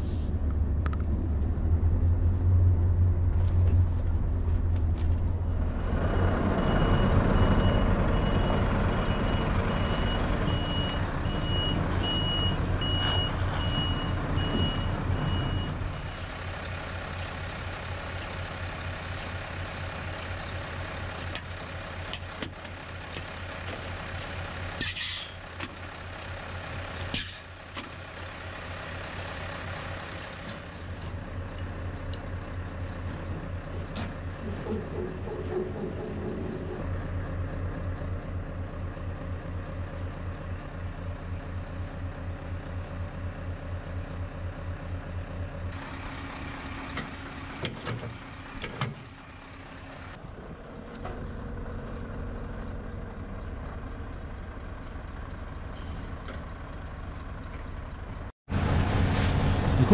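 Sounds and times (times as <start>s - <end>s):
truck engine running: 0.0s - 59.9s
reversing alarm beeping: 6.2s - 16.3s.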